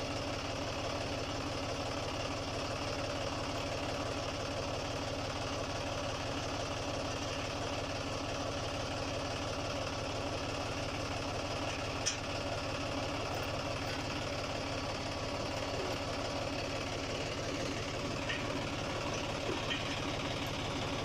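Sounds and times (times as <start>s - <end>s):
tractor diesel engine idling: 0.0s - 21.0s.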